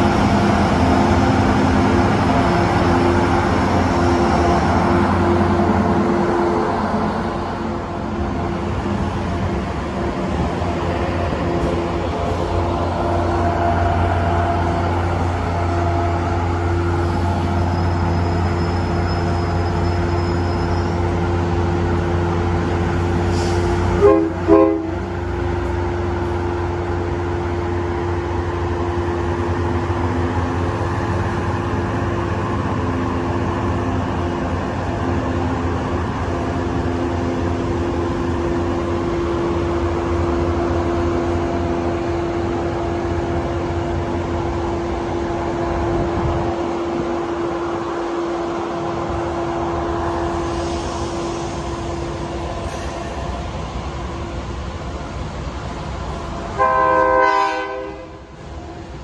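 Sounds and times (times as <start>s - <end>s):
locomotive engine hum and rumble: 0.0s - 59.0s
train horn blasts: 24.0s - 25.1s, 56.5s - 58.3s.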